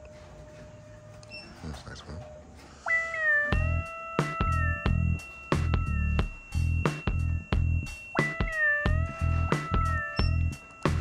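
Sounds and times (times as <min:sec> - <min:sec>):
high held synth note: 0:02.9 - 0:11.0
bass-heavy beat: 0:03.5 - 0:11.0.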